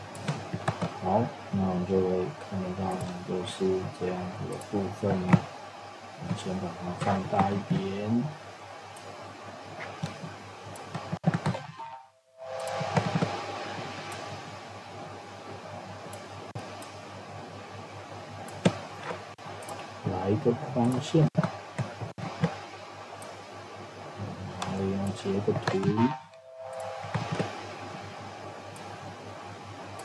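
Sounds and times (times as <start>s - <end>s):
faint steady tone: 0.0s - 30.0s
low electrical hum: 0.0s - 30.0s
microphone hiss: 0.0s - 30.0s
computer mouse clicks: 18.4s - 19.9s.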